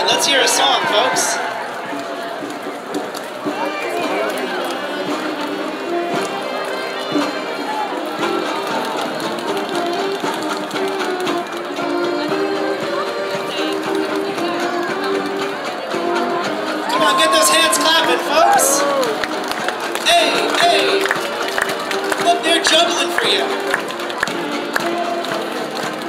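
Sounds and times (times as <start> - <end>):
string band playing: 0.0 - 26.0.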